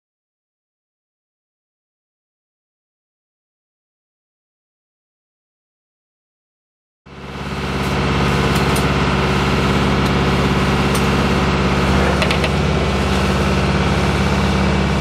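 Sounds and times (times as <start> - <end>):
boat engine drone: 7.1 - 15.0.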